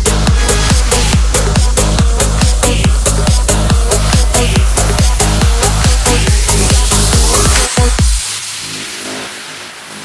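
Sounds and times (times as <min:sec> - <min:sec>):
kick drum beat: 0:00.0 - 0:08.2
soft synth pads: 0:00.0 - 0:10.0
white-noise sweep: 0:00.0 - 0:10.0.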